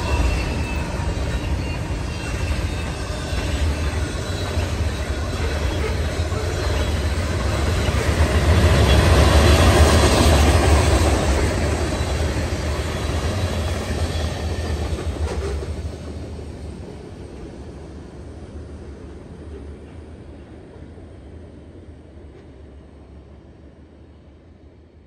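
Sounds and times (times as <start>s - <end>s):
freight train rolling on rails: 0.0s - 25.0s.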